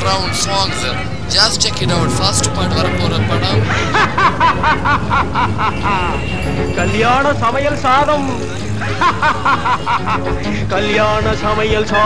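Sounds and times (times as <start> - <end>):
person laughing: 3.5 - 6.1.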